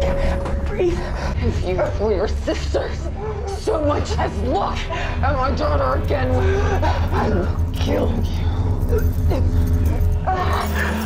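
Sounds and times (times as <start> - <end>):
low music drone: 0.0 - 11.0.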